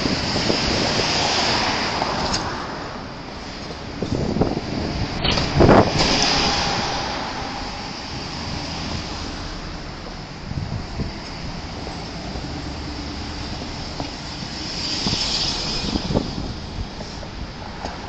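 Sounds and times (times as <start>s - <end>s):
bus passing: 0.0s - 18.0s
cars passing on street: 0.0s - 18.0s.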